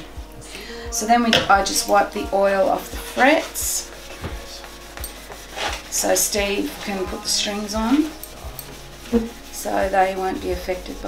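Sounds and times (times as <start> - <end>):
cloth rubbing guitar fretboard: 1.5 - 11.0.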